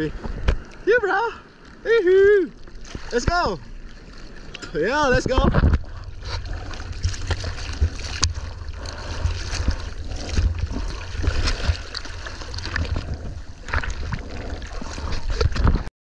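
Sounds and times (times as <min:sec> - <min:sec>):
water buffeting camera rumble: 0:00.0 - 0:15.9
seawater sloshing and splashing: 0:02.5 - 0:15.9.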